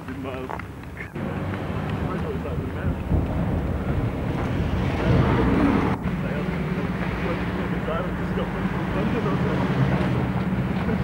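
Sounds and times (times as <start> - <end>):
wind on microphone: 2.5 - 7.4
rough noise: 2.8 - 10.3.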